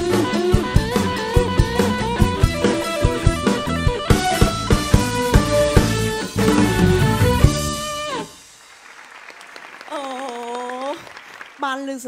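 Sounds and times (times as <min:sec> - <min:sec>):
live band held note: 0:00.0 - 0:08.6
faint audience applause: 0:07.1 - 0:12.0.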